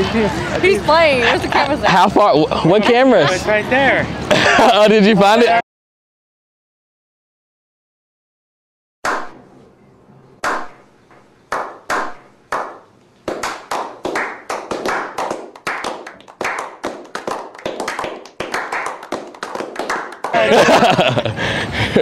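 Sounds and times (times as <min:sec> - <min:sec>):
slow hand claps with echo: 0:11.5 - 0:20.4
steady applause: 0:12.5 - 0:21.2.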